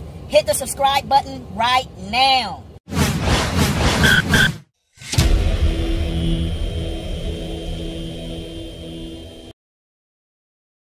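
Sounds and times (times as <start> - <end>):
loud rush of noise: 2.9 - 9.5
sharp hit: 2.9 - 9.5
steady hum: 3.1 - 9.5
short high beeps: 4.0 - 4.6
long low rumble: 5.2 - 9.5.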